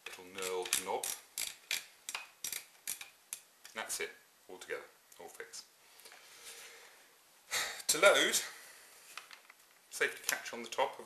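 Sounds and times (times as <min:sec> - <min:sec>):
cap ratcheting clicks: 0:00.4 - 0:03.4.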